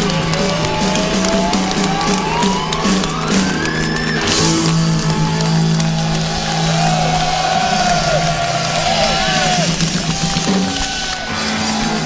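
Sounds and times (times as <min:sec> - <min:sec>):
crowd cheering and whooping: 0:00.0 - 0:12.0.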